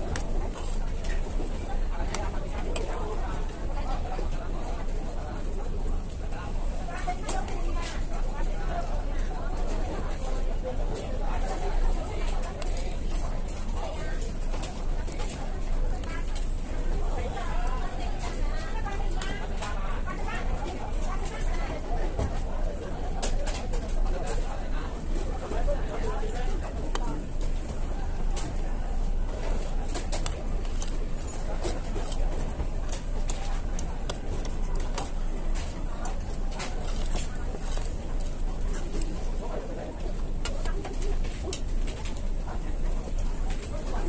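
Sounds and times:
background chatter: 0.0s - 44.0s.

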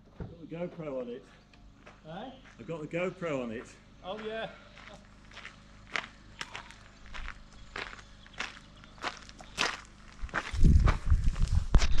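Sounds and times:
footsteps crunching on gravel: 1.8s - 12.0s.

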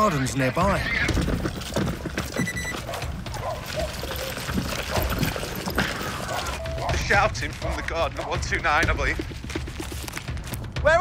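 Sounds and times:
running footsteps on pavement: 0.0s - 11.0s.

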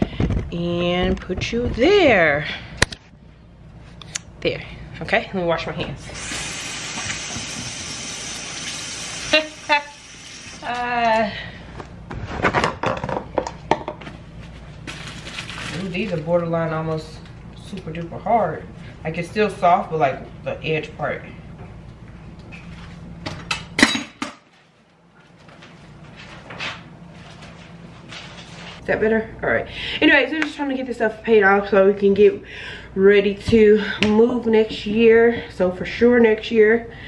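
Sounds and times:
low steady hum: 0.0s - 37.0s.

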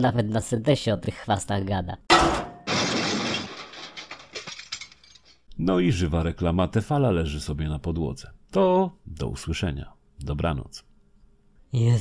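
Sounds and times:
crash: 2.1s - 5.4s.

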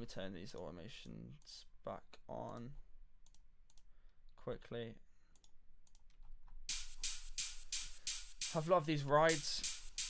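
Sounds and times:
drum and bass track: 6.7s - 10.0s
ride cymbal hits: 6.7s - 10.0s.

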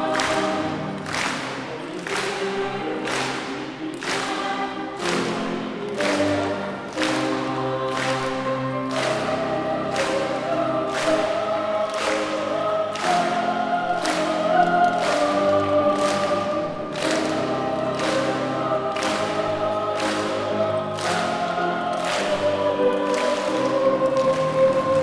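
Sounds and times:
boys' choir singing: 0.0s - 25.0s.

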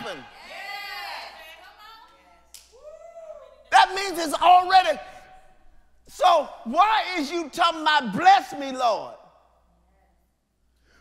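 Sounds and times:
man speaking: 0.0s - 0.3s, 3.7s - 5.4s, 6.0s - 9.3s.

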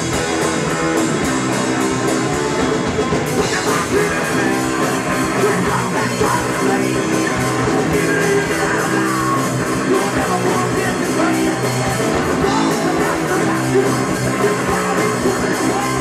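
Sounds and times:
drum kit with cymbal hits: 0.0s - 16.0s
electric guitars: 0.0s - 16.0s
person singing: 3.4s - 16.0s.

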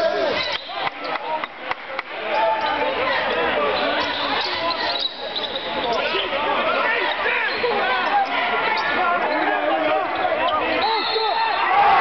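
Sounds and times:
crowd voices calling out: 0.0s - 12.0s.

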